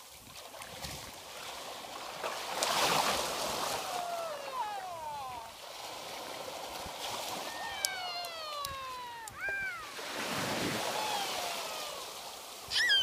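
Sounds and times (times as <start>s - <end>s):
small waves breaking: 0.0s - 13.0s
toddler crying: 3.8s - 5.5s, 7.4s - 10.2s, 10.8s - 13.0s
toddler squealing: 7.4s - 10.2s, 10.8s - 12.1s, 12.7s - 13.0s.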